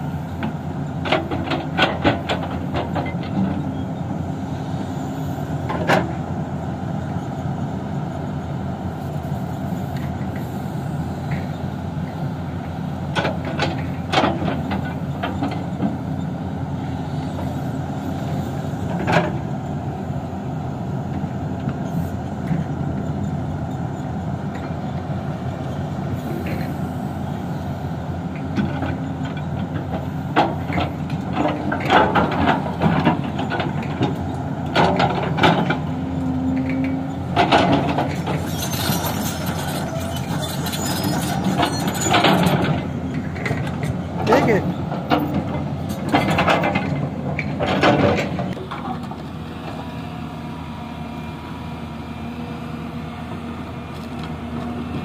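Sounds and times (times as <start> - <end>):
excavator diesel engine running: 0.0 - 55.0.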